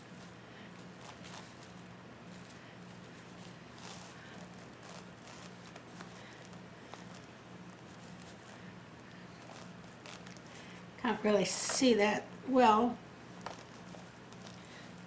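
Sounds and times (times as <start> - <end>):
mesh rustling and tapping: 13.4 - 15.0.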